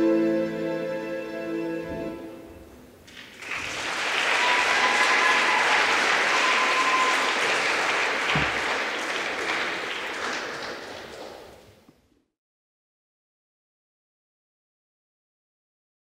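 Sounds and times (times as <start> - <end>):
audience applauding: 3.1 - 11.9.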